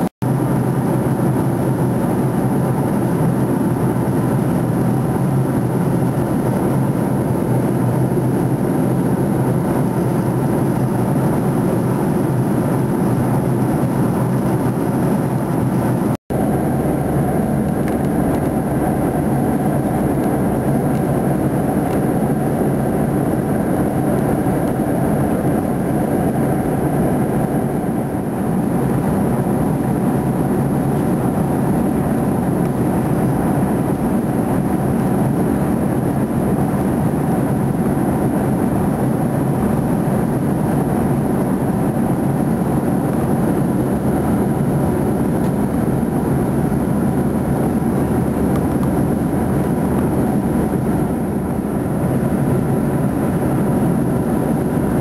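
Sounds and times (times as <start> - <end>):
jet airliner cabin noise: 0.0 - 55.0.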